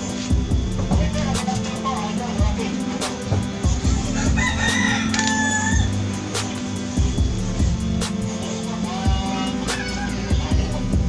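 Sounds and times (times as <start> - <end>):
background music with steady beat: 0.0 - 11.0
rooster crowing: 3.8 - 6.5.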